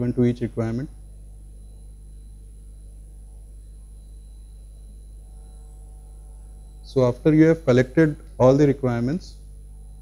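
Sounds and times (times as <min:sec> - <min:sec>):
low electrical hum: 0:00.0 - 0:10.0
thin high whine: 0:00.0 - 0:10.0.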